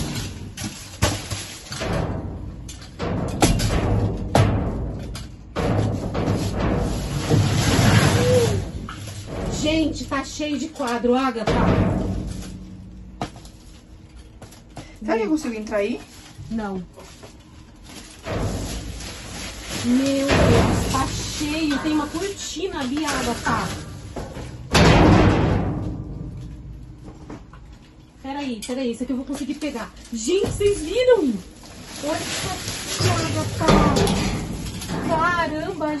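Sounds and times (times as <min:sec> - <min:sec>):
metal pole rummaging through trash: 0:00.0 - 0:14.8, 0:15.5 - 0:36.0
plastic bags and cardboard rustling: 0:00.0 - 0:36.0.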